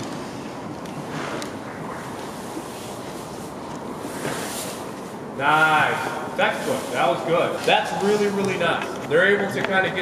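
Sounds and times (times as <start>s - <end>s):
indoor sports hall noise: 0.0s - 10.0s.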